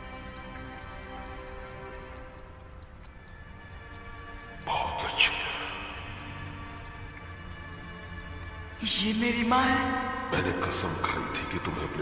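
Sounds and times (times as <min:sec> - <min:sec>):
pocket watch ticking: 0:00.0 - 0:12.0
soft sustained music: 0:00.0 - 0:12.0.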